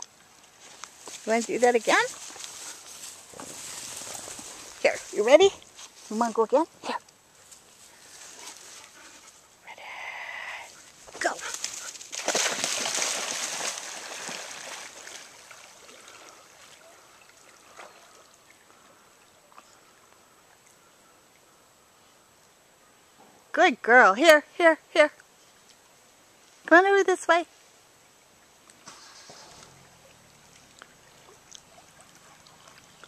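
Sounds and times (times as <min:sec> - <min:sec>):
soft water sloshing: 0:00.0 - 0:06.6, 0:10.8 - 0:21.5, 0:27.5 - 0:33.0
dog splashing into water: 0:11.5 - 0:16.7.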